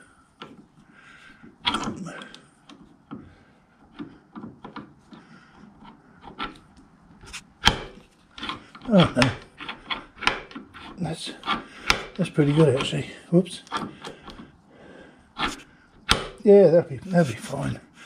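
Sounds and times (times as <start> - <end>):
metal scraping on metal: 5.2 - 14.5, 15.3 - 15.7.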